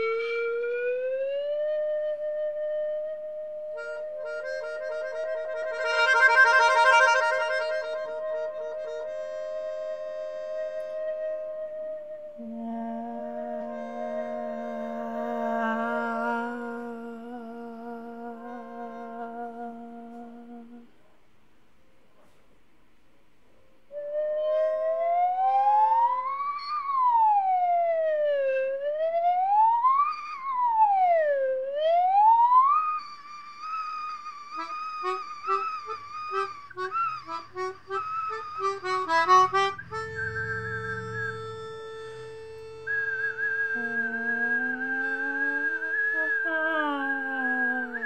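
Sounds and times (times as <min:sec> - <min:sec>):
slide whistle glides: 0:00.0 - 0:15.8, 0:23.9 - 0:48.0
wavering whistle-like tone: 0:00.0 - 0:20.7, 0:23.9 - 0:48.0
melodica playing: 0:03.8 - 0:19.9, 0:32.4 - 0:48.0.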